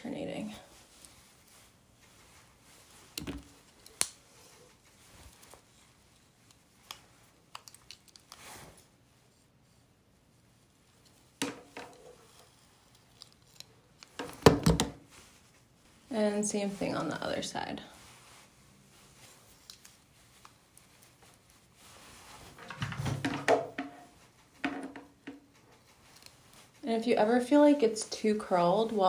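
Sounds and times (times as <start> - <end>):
hair rustling: 0.0 - 29.0.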